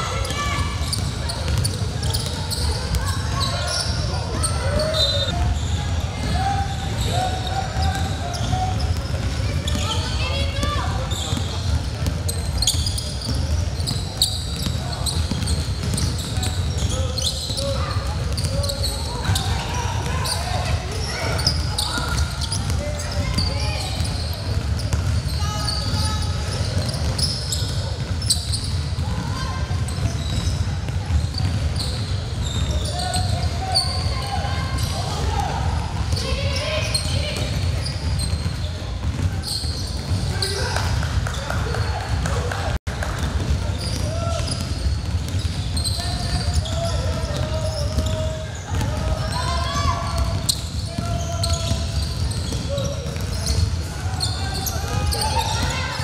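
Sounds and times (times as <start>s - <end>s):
players calling and shouting: 0.0s - 56.0s
basketball bouncing on court: 0.2s - 56.0s.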